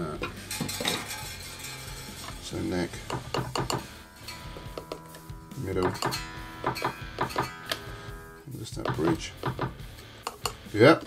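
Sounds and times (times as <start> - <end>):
guitar strings ringing: 0.0 - 10.6
screwdriver tapping guitar pickups: 0.0 - 11.0.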